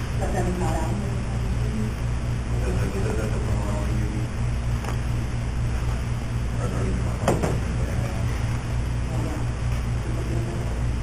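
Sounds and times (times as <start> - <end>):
low hum of room noise: 0.0 - 11.0.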